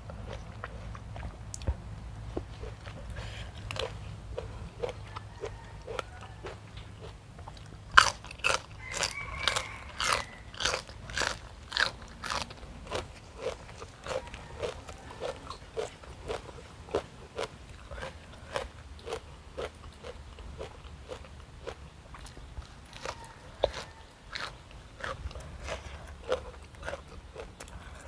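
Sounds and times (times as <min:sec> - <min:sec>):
crunchy chewing: 0:00.0 - 0:28.0
vegetable stalk bitten with crunch: 0:03.6 - 0:27.8.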